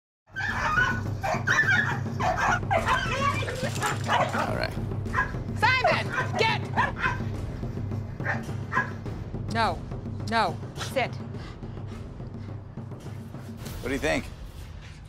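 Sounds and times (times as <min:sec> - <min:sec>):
dog yelping: 0:00.3 - 0:07.3, 0:08.3 - 0:09.0
dogs barking aggressively: 0:00.3 - 0:07.4, 0:08.2 - 0:09.1.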